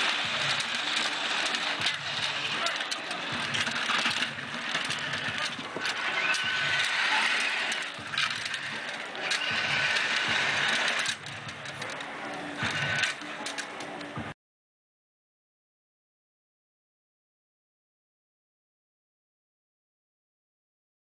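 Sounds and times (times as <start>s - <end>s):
small electric motor whining: 0.0s - 14.0s
outdoor background hum: 0.0s - 14.4s.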